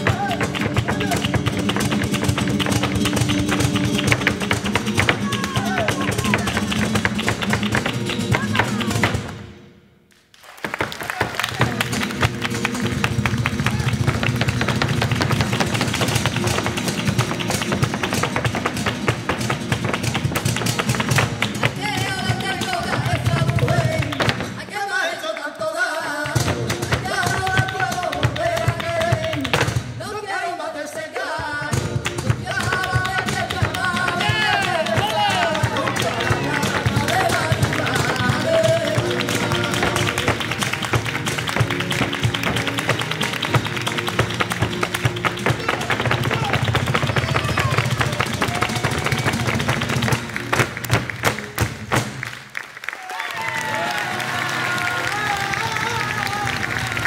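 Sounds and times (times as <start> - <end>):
flamenco guitar with percussive taps: 0.0 - 9.5, 10.6 - 24.9, 26.0 - 30.2, 31.1 - 52.5.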